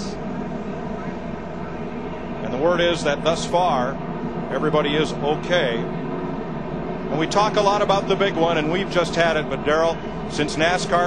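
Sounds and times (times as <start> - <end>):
distant race car engines droning: 0.0 - 11.0.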